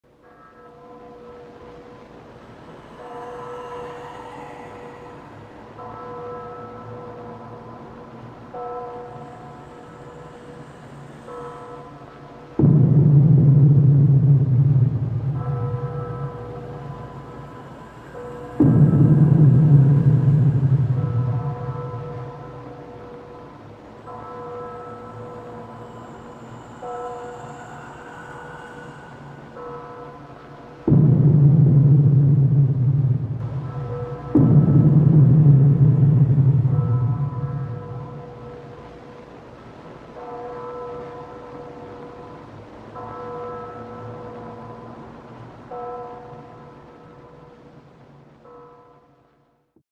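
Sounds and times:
sustained drone chord: 0:00.4 - 0:40.2
hiss: 0:02.4 - 0:05.8, 0:25.0 - 0:30.8.

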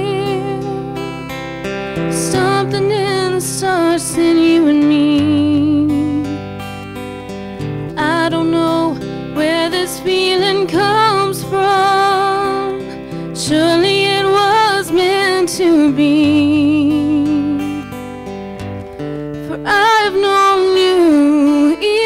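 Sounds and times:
woman singing with vibrato: 0:00.0 - 0:01.4, 0:02.0 - 0:06.6, 0:07.9 - 0:18.0, 0:19.4 - 0:22.0.

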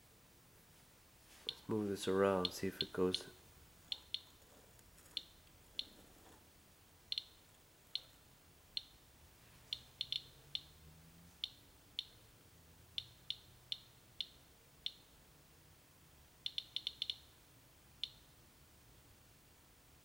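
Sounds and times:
geiger counter clicking: 0:01.5 - 0:01.7, 0:02.4 - 0:04.4, 0:05.0 - 0:06.0, 0:07.1 - 0:09.0, 0:09.7 - 0:10.8, 0:11.4 - 0:12.2, 0:12.9 - 0:15.1, 0:16.4 - 0:17.3.

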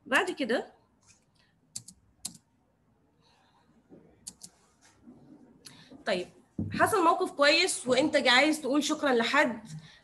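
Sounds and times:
computer keys clicking: 0:01.7 - 0:02.5, 0:04.2 - 0:04.6.

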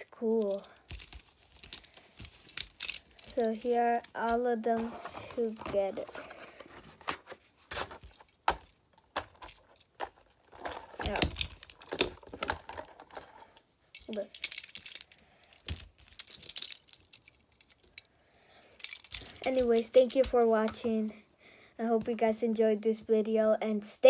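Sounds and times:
metal toy cars clinking: 0:00.3 - 0:04.4, 0:13.9 - 0:18.1, 0:18.8 - 0:20.4.

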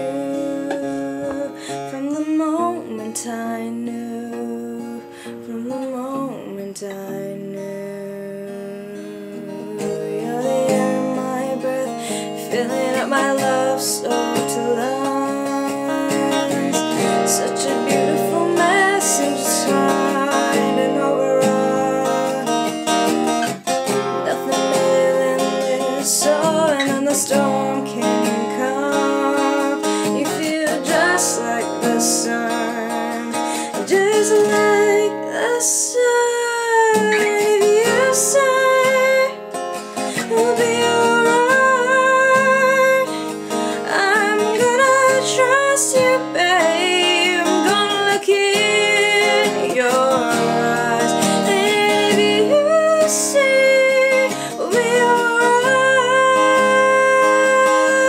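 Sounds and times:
strummed acoustic guitar: 0:00.0 - 0:58.0
woman singing with vibrato: 0:00.0 - 0:58.0.

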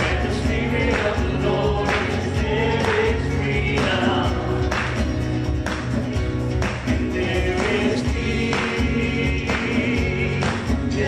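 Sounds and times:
acoustic guitars: 0:00.0 - 0:11.0
keyboard: 0:00.0 - 0:11.0
sustained bass notes: 0:00.0 - 0:11.0
voices singing worship song: 0:00.0 - 0:11.0.

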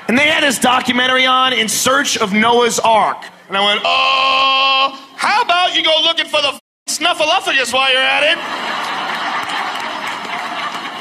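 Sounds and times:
audience laughing and applauding: 0:08.0 - 0:11.0.

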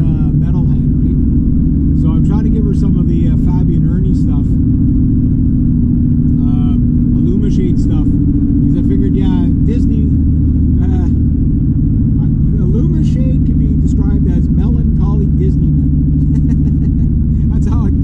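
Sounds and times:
car engine and tyre drone: 0:00.0 - 0:18.0.

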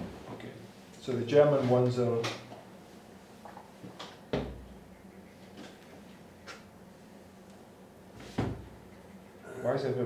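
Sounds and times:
low steady hum: 0:00.0 - 0:10.0
thump: 0:08.4 - 0:08.7.

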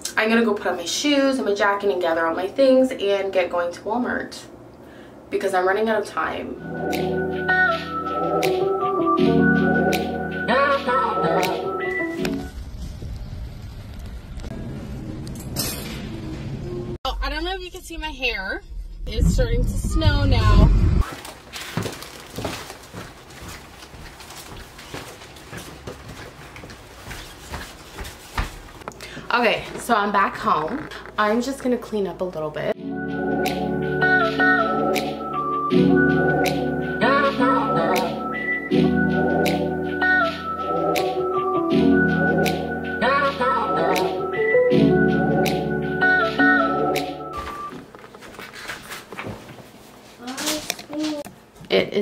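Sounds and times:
footsteps: 0:20.4 - 0:31.3, 0:47.4 - 0:51.8
rustling: 0:21.0 - 0:28.8
camera rustling against sweater: 0:47.7 - 0:51.3.

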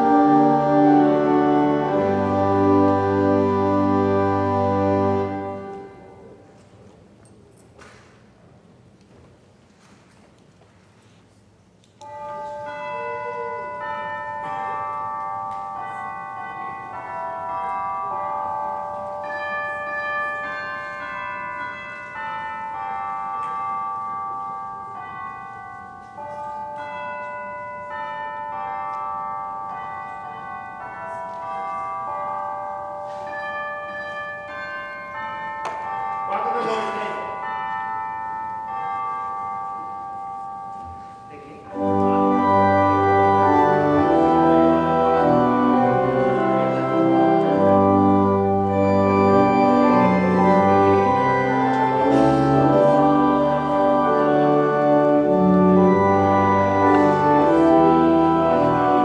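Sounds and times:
hymn melody on chimes: 0:00.0 - 0:06.9, 0:12.0 - 0:59.0.

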